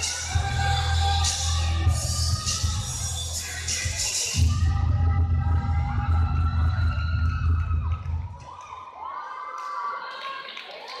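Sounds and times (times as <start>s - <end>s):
audience cheering and shouting: 0.0s - 11.0s.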